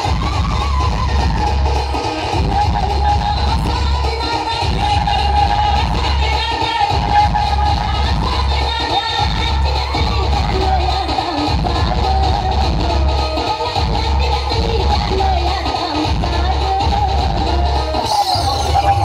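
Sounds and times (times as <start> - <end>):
crowd voices: 0.0 - 19.0
dance music with heavy bass: 16.3 - 19.0.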